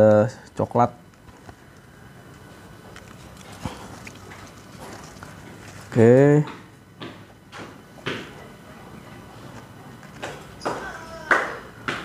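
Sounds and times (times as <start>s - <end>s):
dry roots rustling and crackling: 2.9s - 6.0s.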